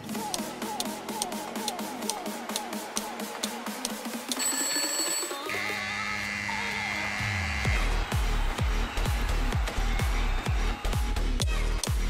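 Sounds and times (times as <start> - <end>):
high ringing tone: 4.3 - 5.8
heavy kick-drum beat: 7.7 - 12.0.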